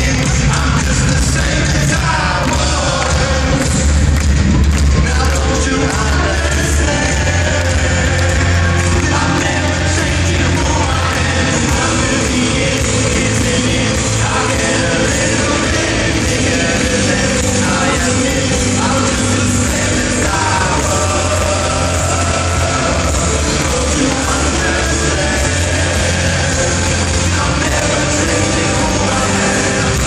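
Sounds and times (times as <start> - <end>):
heavy bass: 0.0 - 30.0
live rock band playing: 0.0 - 30.0
person singing: 0.0 - 30.0.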